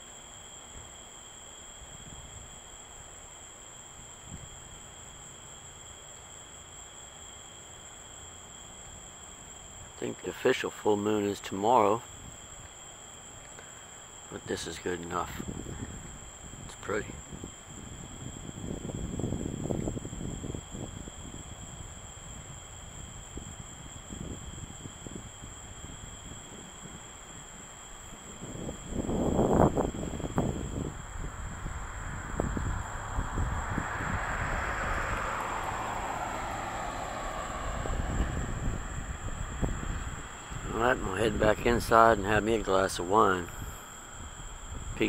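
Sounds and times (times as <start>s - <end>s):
crickets trilling: 0.0s - 45.0s
low rumble on microphone: 15.2s - 45.0s
distant passing rumble: 25.2s - 45.0s.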